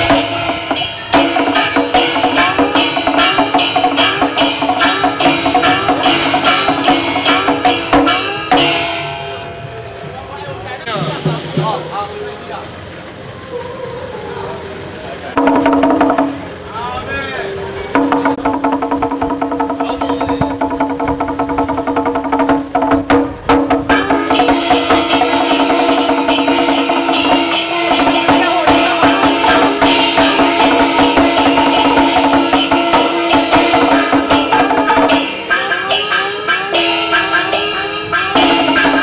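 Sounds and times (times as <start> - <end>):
woodblock strokes: 0.0 - 9.5, 15.4 - 16.6, 18.0 - 39.0
rapid drum strokes: 0.0 - 12.2, 15.3 - 16.8, 17.9 - 39.0
steady held note: 0.0 - 12.6, 15.3 - 39.0.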